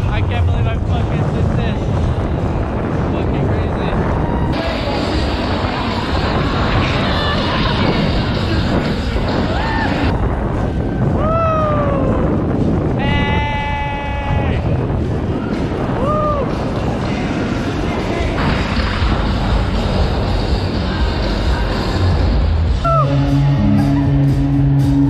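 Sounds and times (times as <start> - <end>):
wind roaring over microphone: 0.0 - 25.0
people whooping: 9.4 - 12.2, 15.4 - 16.6, 22.8 - 24.3.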